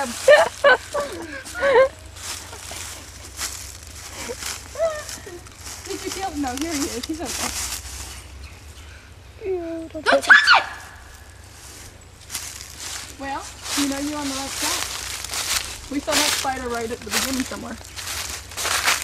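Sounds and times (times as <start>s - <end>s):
people laughing: 0.0s - 3.4s, 4.1s - 5.5s
footsteps in dry leaves: 0.0s - 9.0s, 10.1s - 19.0s
high-pitched cry: 10.0s - 11.0s.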